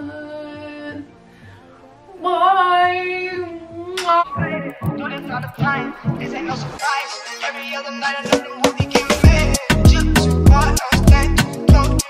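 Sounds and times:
woman singing pop song: 0.0 - 1.1, 2.1 - 12.0
backing music: 1.0 - 12.0.

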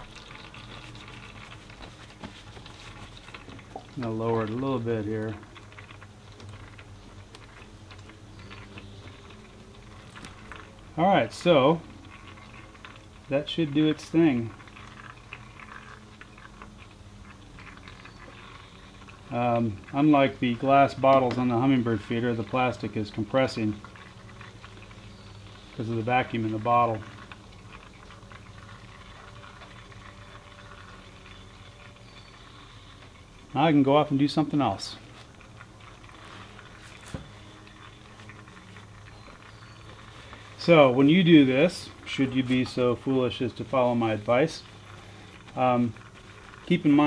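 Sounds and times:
fluid draining: 0.0 - 47.0
plastic jug clicking and crackling: 0.0 - 47.0.

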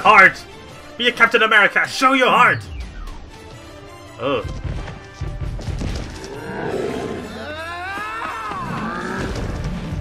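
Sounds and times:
monster growl and roar: 6.2 - 7.6, 8.4 - 10.0.

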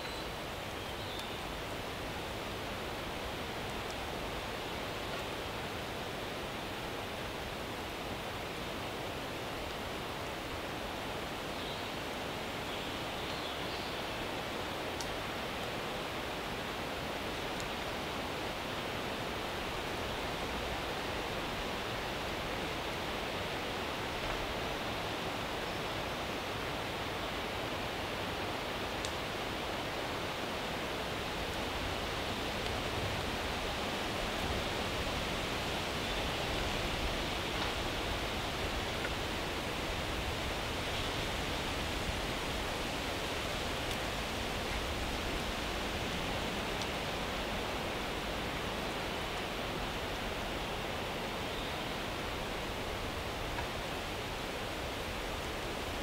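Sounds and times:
forest ambience rushing hiss: 0.0 - 56.0.

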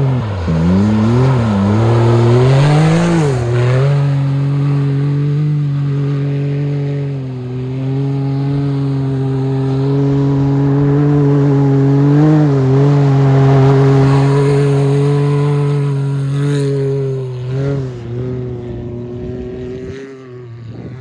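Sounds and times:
engine revving: 0.0 - 21.0.

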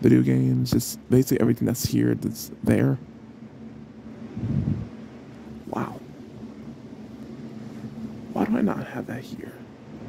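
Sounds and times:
faint recording hiss: 0.0 - 10.0
low hum: 0.0 - 10.0.

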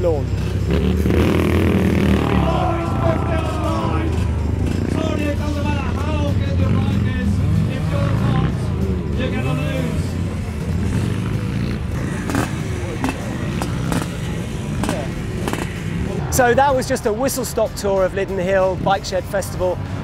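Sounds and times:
dirt bike engines revving: 0.0 - 20.0.

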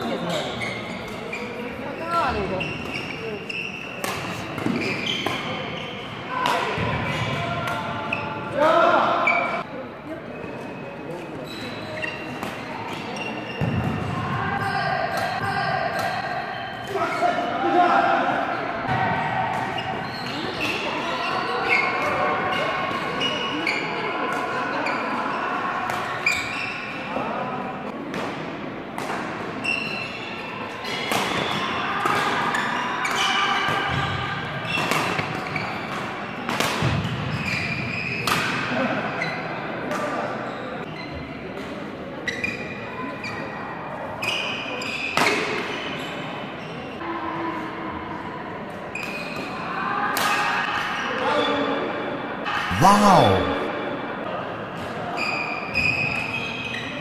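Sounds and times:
shoe squeaks on court floor: 0.0 - 6.2, 10.3 - 13.8, 19.8 - 22.1, 26.2 - 27.0, 29.6 - 31.6, 37.3 - 38.4, 42.2 - 43.4, 55.2 - 57.0
voices: 52.5 - 53.7.

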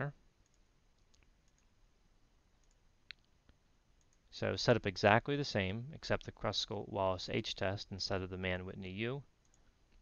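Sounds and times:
computer mouse clicks: 0.4 - 1.7, 2.6 - 4.2, 9.4 - 10.0.

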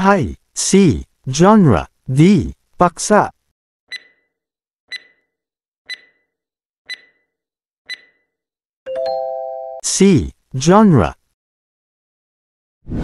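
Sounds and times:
timer ticks: 3.9 - 4.3, 4.9 - 5.3, 5.9 - 6.3, 6.9 - 7.3, 7.9 - 8.3.

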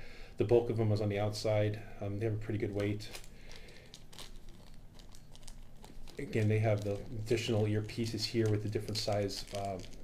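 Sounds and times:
plastic bag crinkling: 2.6 - 10.0.

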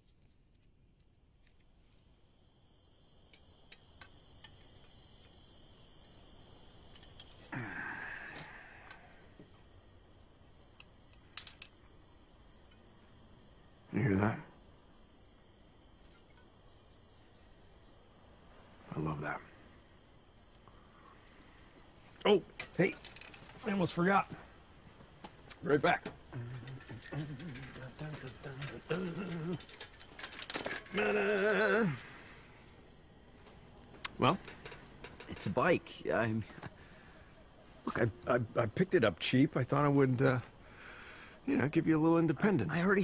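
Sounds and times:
crickets chirring: 0.0 - 43.0
wordless vocal sounds: 30.8 - 32.6.

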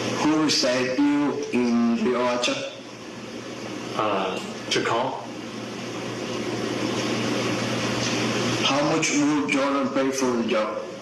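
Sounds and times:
low machine hum with hiss: 0.0 - 11.0.

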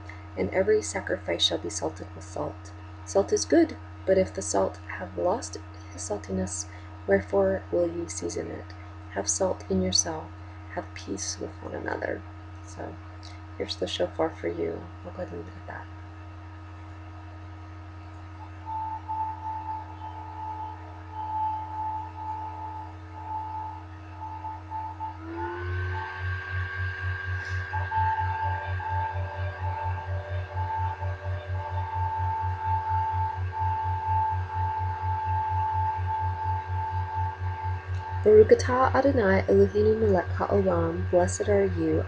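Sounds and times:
low pulsing hum: 0.0 - 42.0
shofar horn tones: 18.4 - 42.0.

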